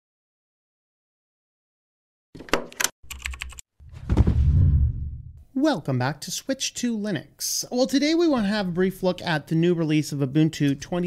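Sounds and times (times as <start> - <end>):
keyboard typing clicks: 2.5 - 3.6
low rumble: 3.8 - 5.4.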